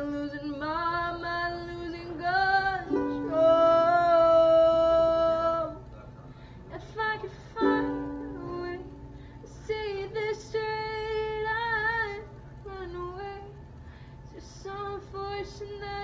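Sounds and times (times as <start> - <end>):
woman singing: 0.0 - 5.8, 6.7 - 13.6, 14.3 - 16.0
ukulele strums: 2.8 - 4.4, 7.6 - 9.1.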